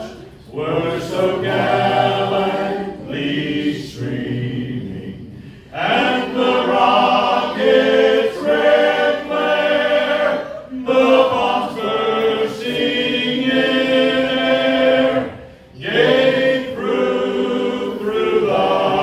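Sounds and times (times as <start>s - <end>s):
men singing in harmony: 5.8s - 19.0s.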